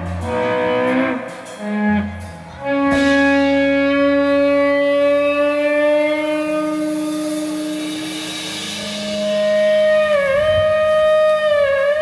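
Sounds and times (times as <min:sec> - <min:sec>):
electric guitar sustained notes: 0:00.0 - 0:12.0.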